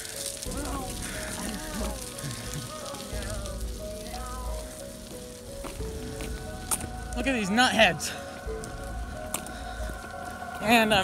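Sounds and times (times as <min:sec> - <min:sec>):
steady outdoor hiss: 0:00.0 - 0:11.0
wind rumbling on microphone: 0:00.1 - 0:11.0
faint voices: 0:00.4 - 0:11.0.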